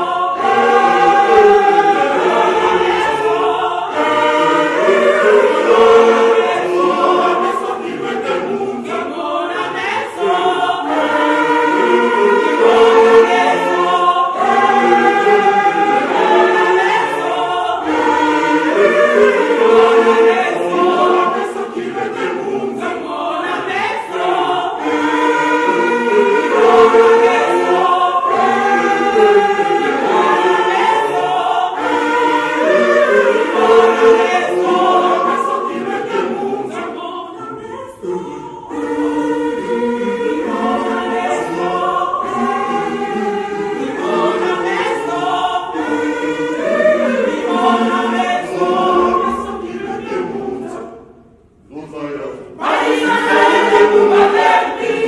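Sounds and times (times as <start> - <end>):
choir singing a hymn: 0.0 - 51.6, 52.2 - 55.0.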